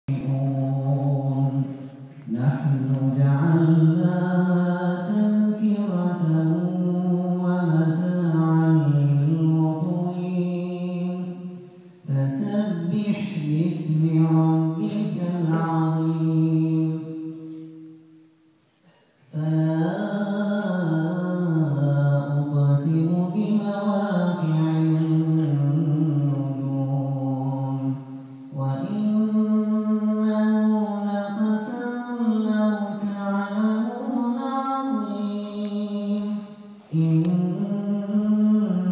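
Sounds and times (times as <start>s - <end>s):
man reciting melodically: 0.0s - 18.1s, 19.2s - 38.9s.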